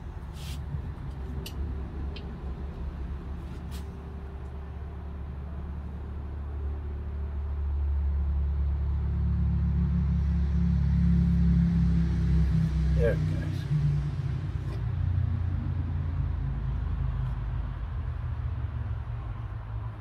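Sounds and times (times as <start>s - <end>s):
vehicle engine rumble: 0.0s - 20.0s.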